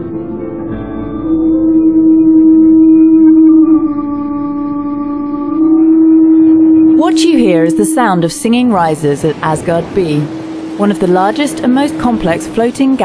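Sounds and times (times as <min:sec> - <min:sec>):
gas pipe howling whine: 0:00.4 - 0:13.0.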